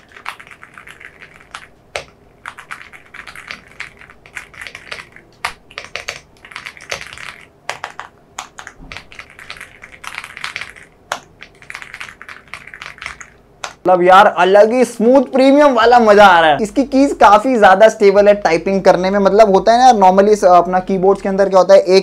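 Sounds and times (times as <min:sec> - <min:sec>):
mechanical keyboard typing: 0:00.0 - 0:13.8.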